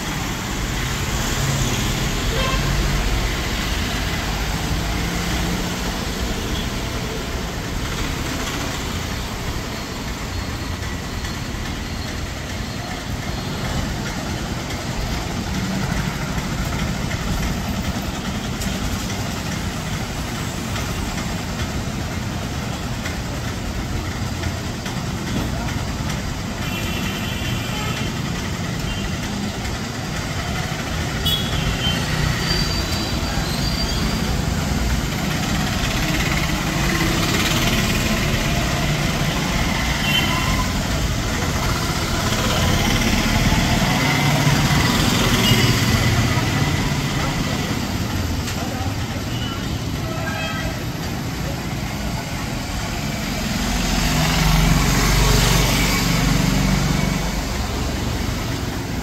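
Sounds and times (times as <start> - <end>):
street traffic passing: 0.0 - 59.0.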